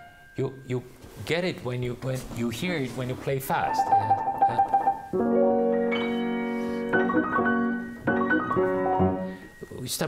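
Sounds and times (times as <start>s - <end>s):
grand piano notes: 0.0s - 10.0s.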